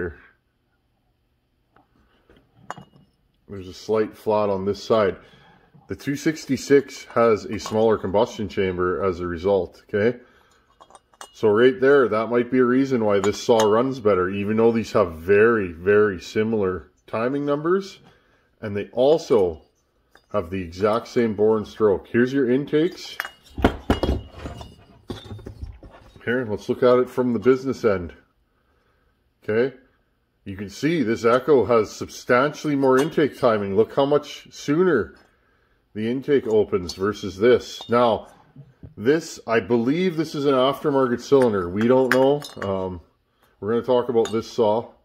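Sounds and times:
metal part clinking: 0:02.6 - 0:03.2, 0:10.4 - 0:11.5, 0:19.3 - 0:21.1, 0:23.0 - 0:26.2, 0:32.8 - 0:33.4, 0:41.3 - 0:42.8
faint metallic ring: 0:02.6 - 0:03.3, 0:10.3 - 0:11.7, 0:19.3 - 0:21.1.

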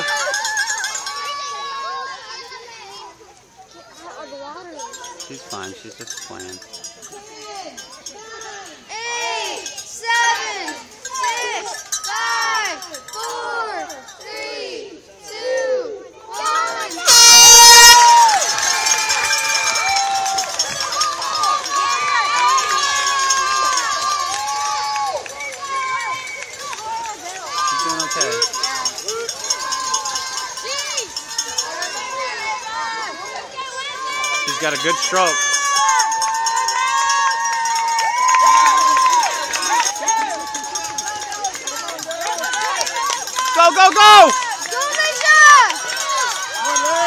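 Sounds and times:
spectators cheering and shouting: 0:00.0 - 0:03.2, 0:03.9 - 0:47.0
voices calling out rhythmically: 0:00.0 - 0:47.0
start horn: 0:17.1 - 0:18.0.

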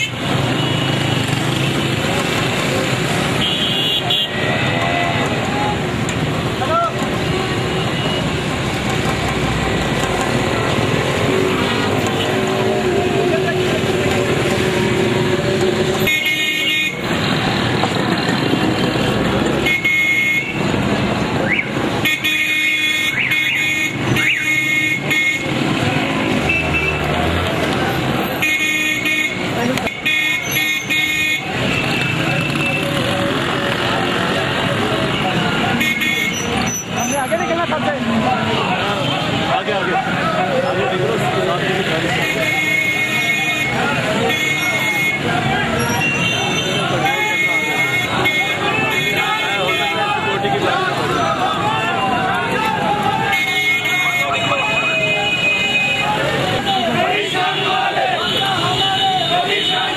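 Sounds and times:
people's voices: 0:00.0 - 0:22.2, 0:23.0 - 0:59.9
traffic engine noise: 0:00.0 - 0:59.9
vehicle horns honking: 0:03.2 - 0:04.8, 0:15.8 - 0:17.4, 0:19.6 - 0:20.8, 0:21.5 - 0:27.1, 0:28.0 - 0:33.0, 0:35.6 - 0:37.6, 0:42.1 - 0:50.4, 0:53.1 - 0:59.9.

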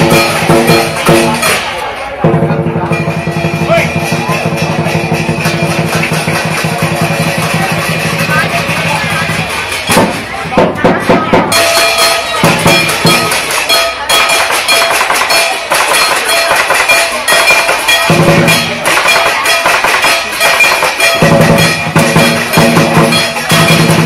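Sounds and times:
cymbals ringing: 0:00.0 - 0:24.0
drum beating fast: 0:00.0 - 0:24.0.

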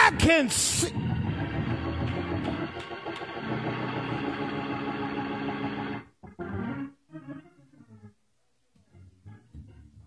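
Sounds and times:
church organ chords: 0:00.0 - 0:08.1.

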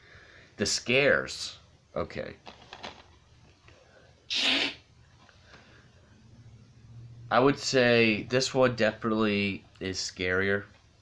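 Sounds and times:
man sneezing: 0:04.3 - 0:04.9.

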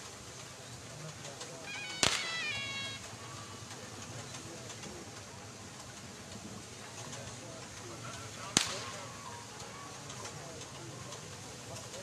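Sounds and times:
sharp crack: 0:01.9 - 0:02.6, 0:08.5 - 0:09.2.

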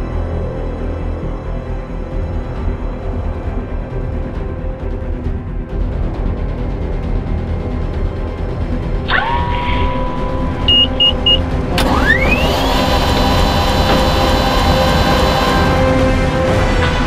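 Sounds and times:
background music: 0:00.0 - 0:17.0
helicopter turbine whine: 0:10.1 - 0:16.9
short high beeps: 0:10.6 - 0:11.4
click: 0:11.3 - 0:15.8.

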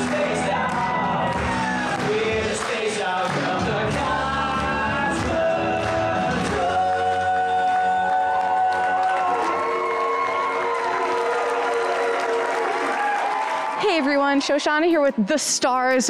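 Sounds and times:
live rock music with singing: 0:00.0 - 0:09.7
audience applauding: 0:00.0 - 0:15.2.

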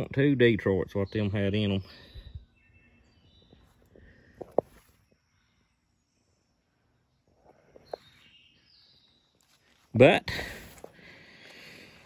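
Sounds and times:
distant birds chirping: 0:00.0 - 0:12.0.

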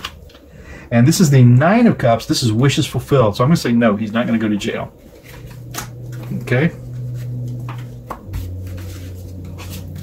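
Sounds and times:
steady low hum: 0:00.0 - 0:10.0
cards knocking and tapping: 0:07.5 - 0:09.8
cards being stacked by hand: 0:07.5 - 0:10.0.

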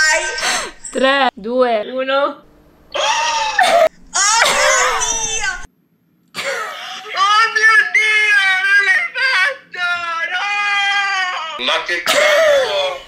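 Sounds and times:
women shrieking: 0:02.9 - 0:05.7, 0:10.3 - 0:11.6.

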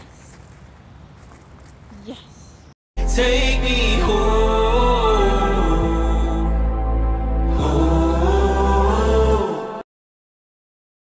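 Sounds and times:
deep held bass: 0:03.0 - 0:09.5
song with sustained vocals: 0:03.0 - 0:09.8.

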